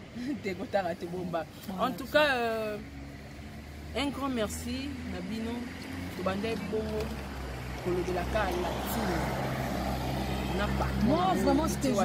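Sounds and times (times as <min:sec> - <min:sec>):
traffic engine hum: 0:00.0 - 0:12.0
vehicle passing close by: 0:02.0 - 0:12.0.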